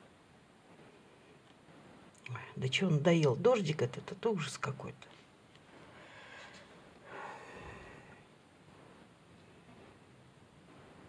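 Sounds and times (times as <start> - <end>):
faint breathing: 5.7 - 9.0.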